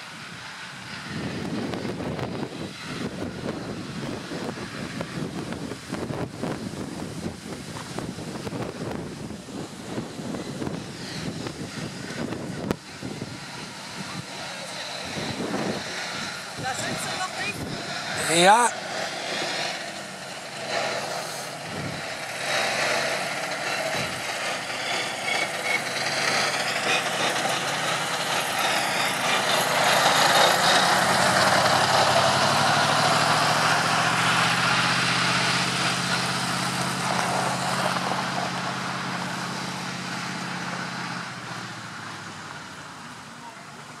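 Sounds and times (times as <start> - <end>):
tractor driving past: 0.0 - 44.0.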